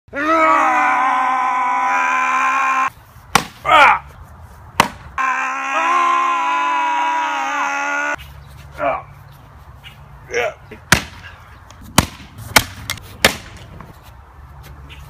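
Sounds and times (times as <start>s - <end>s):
men yelling with effort: 0.1s - 2.9s, 5.2s - 8.2s.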